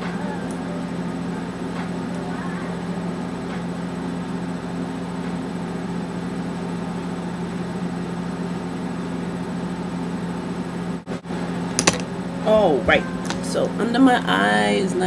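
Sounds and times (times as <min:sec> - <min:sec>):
machine hum: 0:00.0 - 0:15.0.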